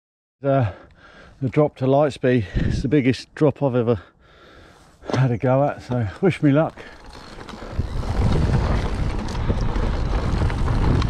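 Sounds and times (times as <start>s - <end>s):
bike rattles: 5.2s - 11.0s
bike tyre noise on dirt: 5.8s - 11.0s
wind buffeting microphone: 7.0s - 11.0s.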